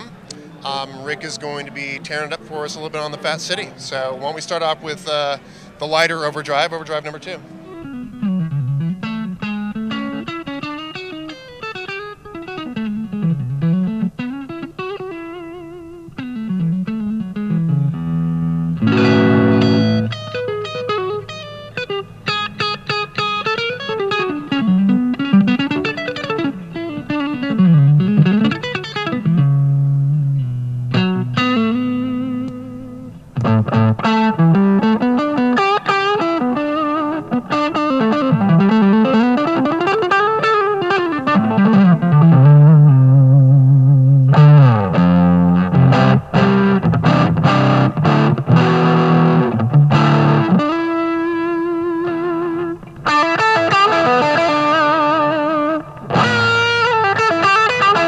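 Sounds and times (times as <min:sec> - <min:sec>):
overdriven electric guitar: 0:07.4 - 0:58.0.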